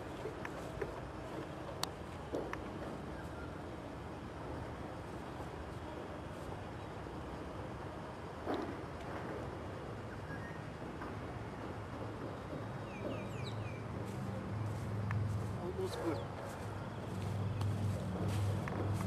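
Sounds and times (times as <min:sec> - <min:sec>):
low outdoor rumble: 0:00.0 - 0:19.0
bird chirping: 0:12.8 - 0:13.8.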